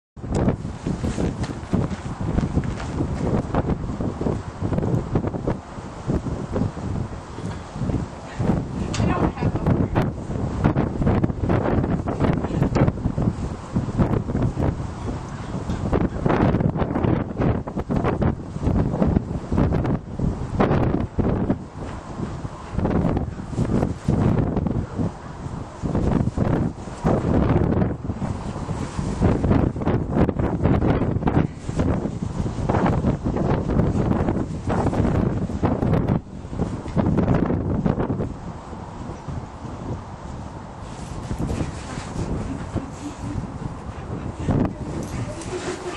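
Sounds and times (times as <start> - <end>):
wind buffeting microphone: 0.2 - 45.9.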